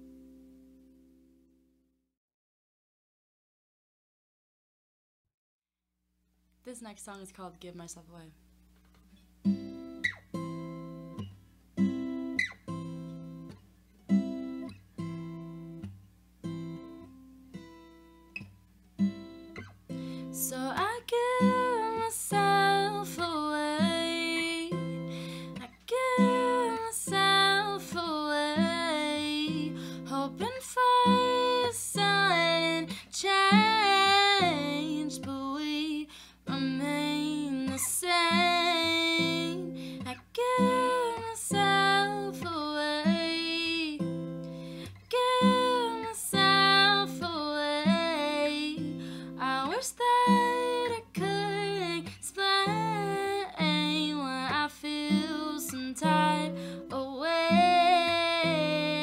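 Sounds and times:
acoustic guitar strums: 8.7 - 35.5, 36.1 - 59.0
woman singing: 20.2 - 59.0.

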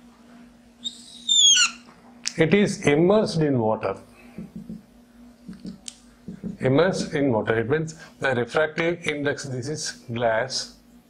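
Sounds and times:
whiteboard marker squeaking: 0.8 - 1.9.

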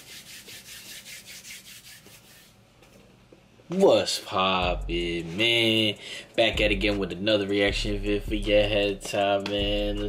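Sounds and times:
hands rubbing together: 0.0 - 2.6.

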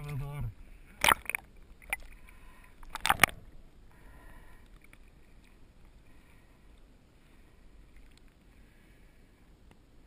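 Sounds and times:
water splashing and sloshing: 0.0 - 3.7.

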